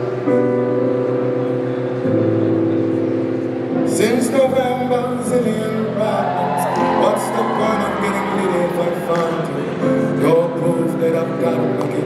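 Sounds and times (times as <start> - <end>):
held keyboard chords: 0.0 - 12.0.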